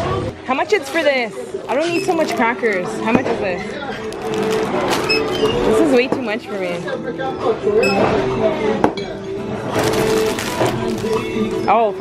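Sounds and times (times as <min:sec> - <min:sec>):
background music: 0:00.0 - 0:12.0
plastic wrapper rustling: 0:00.7 - 0:02.8, 0:03.9 - 0:05.9, 0:09.7 - 0:11.5
background voices: 0:09.4 - 0:12.0.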